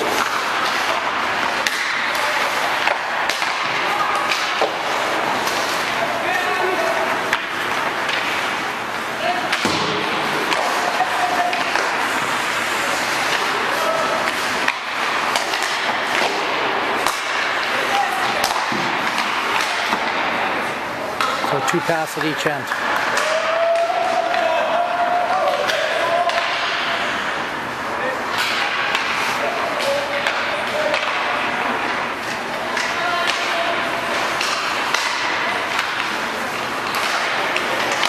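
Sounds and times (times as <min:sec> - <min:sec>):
hockey sticks and puck clacks: 0:00.0 - 0:38.0
skates scraping on ice: 0:00.0 - 0:38.0
players calling out: 0:00.1 - 0:38.0.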